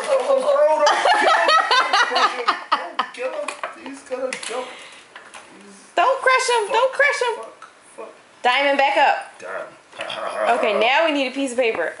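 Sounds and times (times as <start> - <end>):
quiet voices: 9.5 - 10.7.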